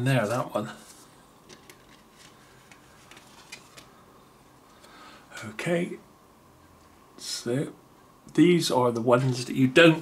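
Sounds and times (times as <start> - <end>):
paper rustling: 0.8 - 3.9.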